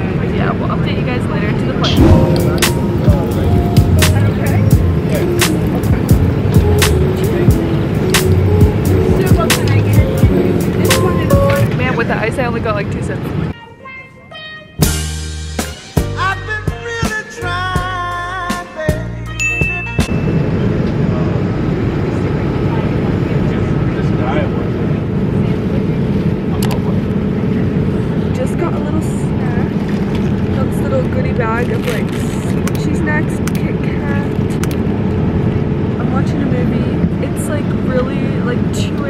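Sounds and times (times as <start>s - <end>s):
airliner cabin roar: 0.0s - 13.6s, 20.1s - 39.0s
faint voices: 0.0s - 13.6s.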